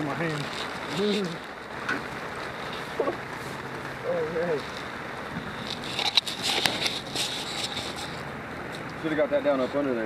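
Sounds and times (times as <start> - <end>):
fire crackling and popping: 0.0 - 9.8
gasoline splashing: 0.0 - 10.0
steady background hiss: 0.0 - 10.0.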